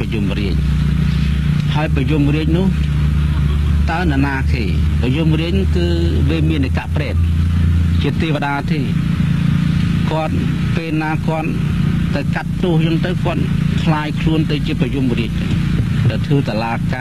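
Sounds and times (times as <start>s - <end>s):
man speaking: 0.0s - 0.7s, 1.6s - 9.1s, 10.0s - 17.0s
steady low hum: 0.0s - 17.0s.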